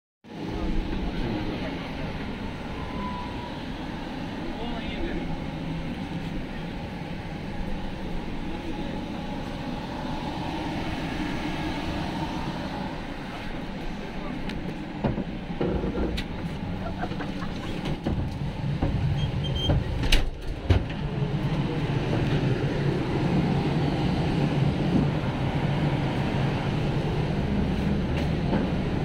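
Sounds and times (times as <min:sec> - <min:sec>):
train carriage rumble and hiss: 0:00.3 - 0:29.0.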